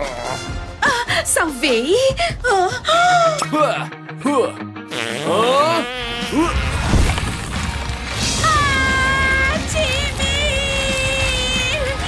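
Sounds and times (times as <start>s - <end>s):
comic fart sound: 4.9s - 7.7s.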